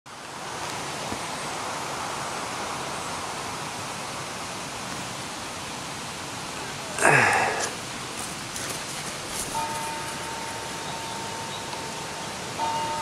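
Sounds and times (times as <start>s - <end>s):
steady rushing hiss: 0.1s - 13.0s.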